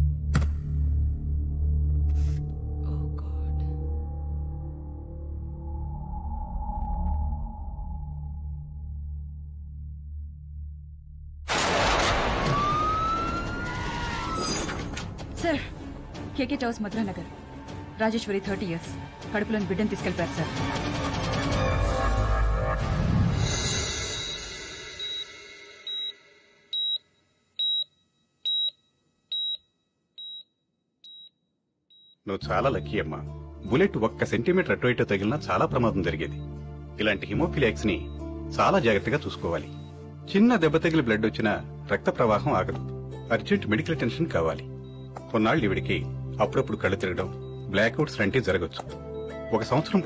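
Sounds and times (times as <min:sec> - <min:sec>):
heart monitor beeping: 0:25.0 - 0:25.3, 0:25.9 - 0:27.0, 0:27.6 - 0:27.9, 0:28.5 - 0:29.6, 0:30.2 - 0:32.2, 0:44.8 - 0:45.3, 0:46.5 - 0:48.5.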